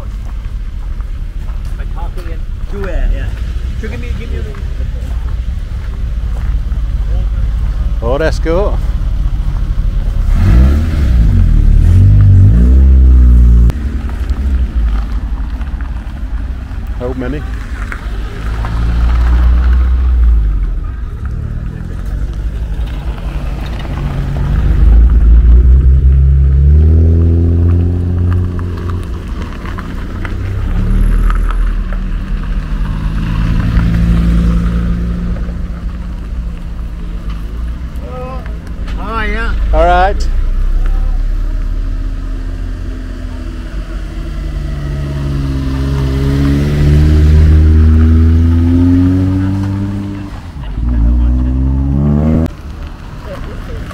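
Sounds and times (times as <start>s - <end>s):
cars driving past on gravel: 0.0s - 53.9s.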